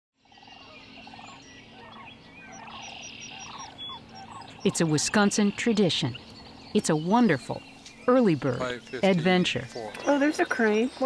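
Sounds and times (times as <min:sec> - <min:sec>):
cranes rattling calls: 0:00.2 - 0:11.0
high bird chirps: 0:00.2 - 0:11.0.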